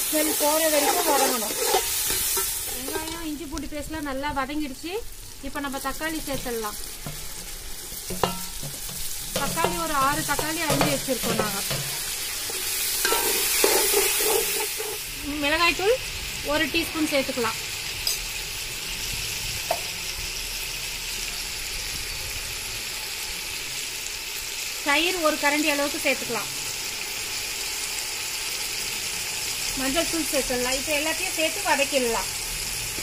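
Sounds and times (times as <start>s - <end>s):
vegetables sizzling in oil: 0.0s - 33.0s.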